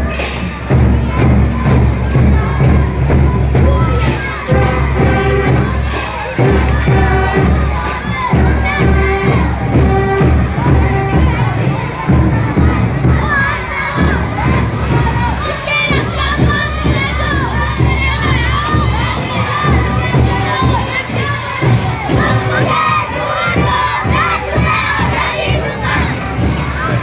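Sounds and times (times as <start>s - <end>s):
children shouting together: 0.0s - 27.0s.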